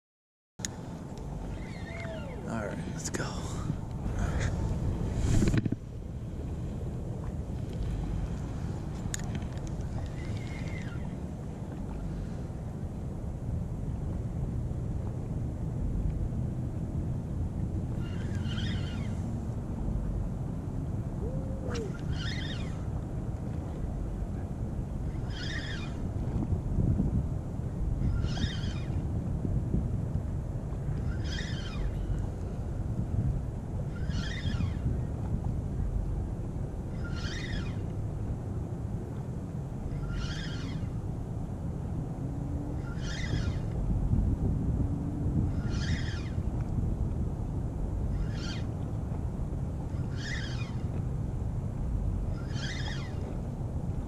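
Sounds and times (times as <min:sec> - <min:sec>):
low wind rumble: 0:00.6 - 0:54.0
spinning reel whirring: 0:01.2 - 0:02.6, 0:09.2 - 0:11.2, 0:17.9 - 0:19.2, 0:21.6 - 0:22.8, 0:25.1 - 0:26.1, 0:28.0 - 0:29.0, 0:31.0 - 0:32.1, 0:33.9 - 0:34.9, 0:37.0 - 0:37.9, 0:40.0 - 0:41.0, 0:42.8 - 0:43.8, 0:45.6 - 0:46.5, 0:50.0 - 0:50.8, 0:52.4 - 0:53.3.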